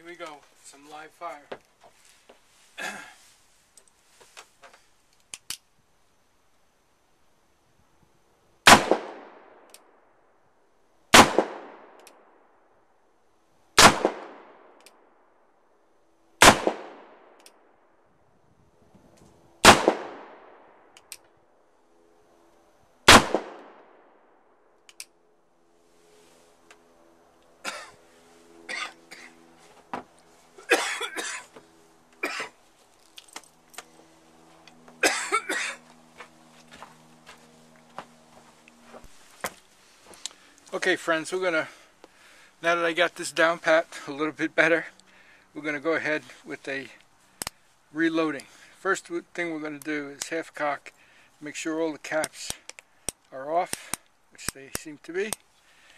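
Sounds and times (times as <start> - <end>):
rustling: 0.2 - 5.4, 31.4 - 35.0, 35.7 - 41.1
revolver gunshots: 8.6 - 10.0, 11.1 - 12.5, 13.8 - 15.1, 16.4 - 17.7, 19.6 - 21.0, 23.0 - 24.4.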